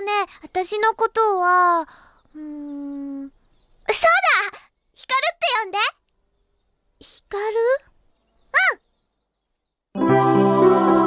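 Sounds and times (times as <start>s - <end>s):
music: 10.0s - 11.0s.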